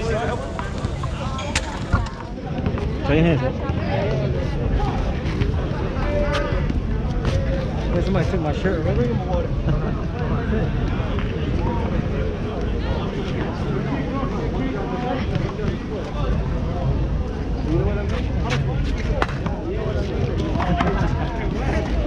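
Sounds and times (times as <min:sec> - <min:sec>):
people chattering: 0:00.0 - 0:22.0.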